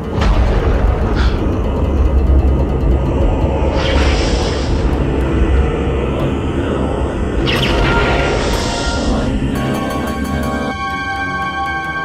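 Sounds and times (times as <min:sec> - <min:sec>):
deep rumble of thunder: 0:00.0 - 0:07.3.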